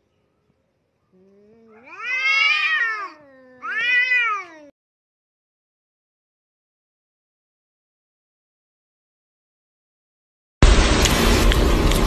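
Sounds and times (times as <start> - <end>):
cat yowling: 1.2 - 4.8.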